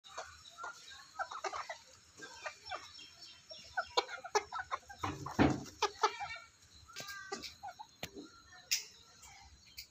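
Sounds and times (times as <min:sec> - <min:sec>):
chickens clucking: 0:00.0 - 0:09.9.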